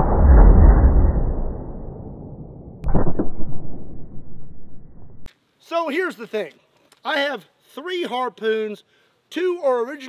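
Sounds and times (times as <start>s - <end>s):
gunshot rumble: 0.0s - 5.3s
sharp crack: 0.2s - 4.5s.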